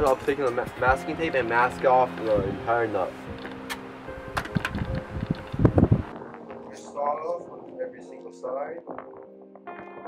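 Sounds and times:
faint background music: 0.0 - 10.0
tape being pulled and torn: 3.4 - 4.9.

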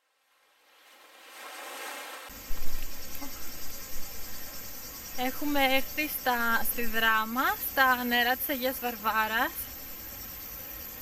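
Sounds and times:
insects chirring: 0.8 - 11.0.

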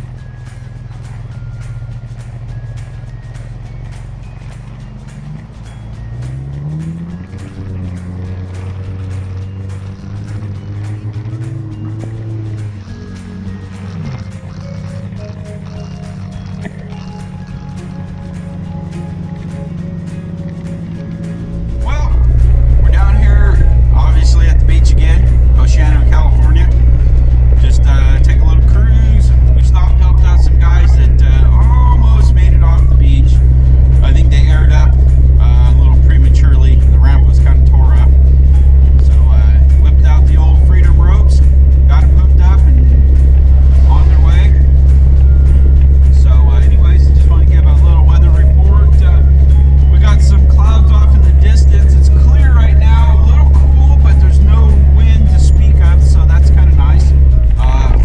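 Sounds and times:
engine and tyres droning: 0.0 - 58.0
music playing: 0.0 - 58.0
person talking: 21.7 - 26.8, 27.5 - 38.2, 39.0 - 44.8, 46.0 - 58.0.

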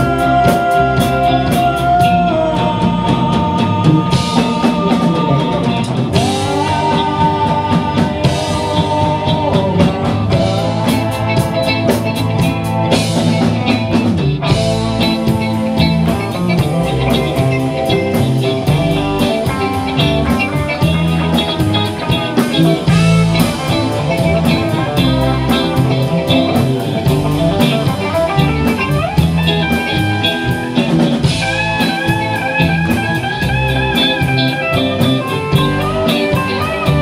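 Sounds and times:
bass guitar: 0.0 - 37.0
drum kit: 0.0 - 37.0
electric guitars: 0.0 - 37.0
keyboard: 0.0 - 37.0
person singing lead vocal: 0.0 - 37.0.

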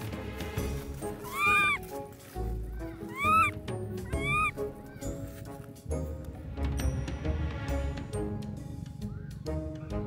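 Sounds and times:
background music: 0.0 - 10.0
baby monkey calling: 1.1 - 1.8, 2.7 - 5.3.

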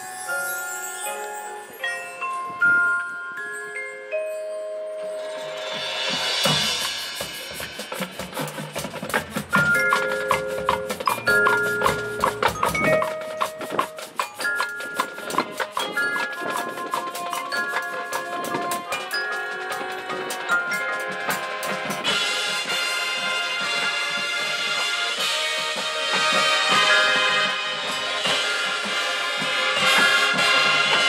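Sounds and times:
vibraphone: 0.0 - 22.3, 26.2 - 31.0
fast ticking percussion rhythm: 0.0 - 31.0
glockenspiel: 0.0 - 31.0
marimba: 0.0 - 31.0
shimmering percussion swell: 4.3 - 8.8.

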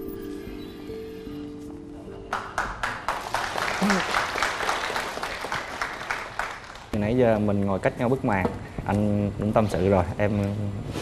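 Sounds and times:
soft held chords background music: 0.0 - 3.2.

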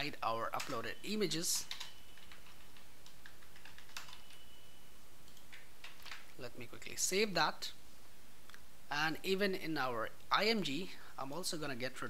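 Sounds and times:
keyboard typing: 0.0 - 4.6, 5.2 - 6.4
background hiss: 0.0 - 12.0.

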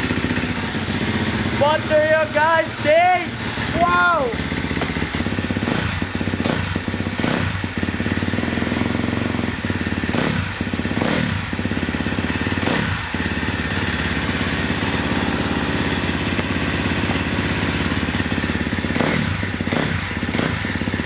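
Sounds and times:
motorcycle engine revving and idling: 0.0 - 21.0.

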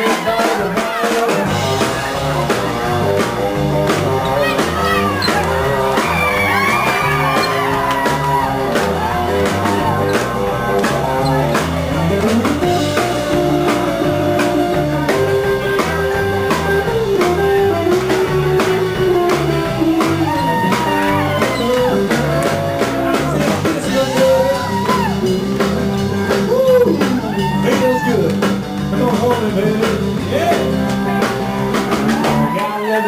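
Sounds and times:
drum kit beat: 0.0 - 32.6
electric bass: 0.3 - 32.6
lead electric guitar bending notes: 1.5 - 32.1.

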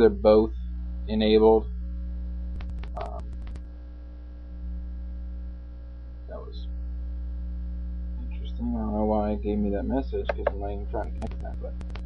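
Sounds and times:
electrical mains hum: 0.0 - 12.0
quick run of clicks: 2.6 - 3.6, 10.3 - 12.0.

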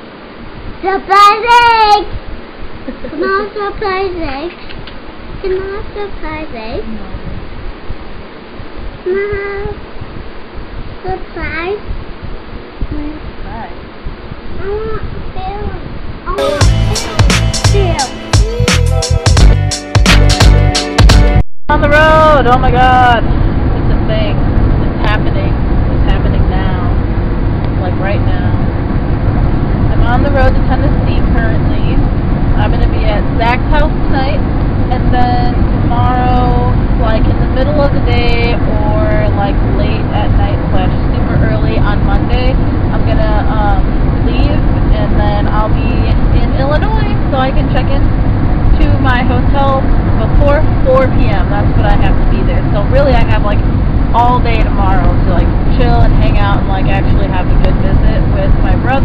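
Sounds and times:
woman singing: 16.4 - 18.7
car road and engine rumble: 21.9 - 59.0.

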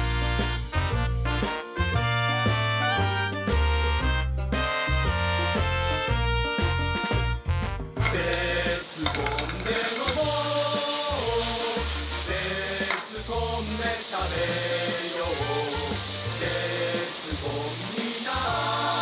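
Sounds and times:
background music with bass line: 0.0 - 19.0
food sizzling in a wok: 8.0 - 19.0.

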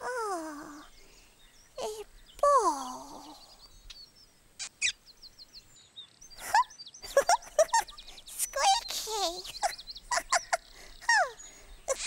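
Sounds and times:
birds chirping: 0.0 - 12.0
sharp bird calls: 0.0 - 12.0.

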